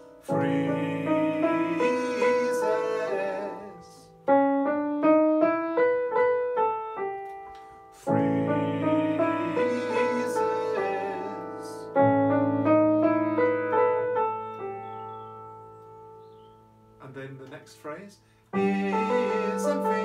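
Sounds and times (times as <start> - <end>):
jazzy keyboard piano melody: 0.0 - 20.0.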